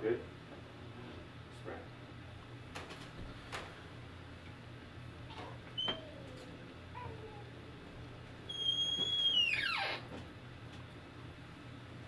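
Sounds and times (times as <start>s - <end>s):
low room hum: 0.0s - 12.0s
high-pitched squeak sliding down: 8.5s - 10.0s.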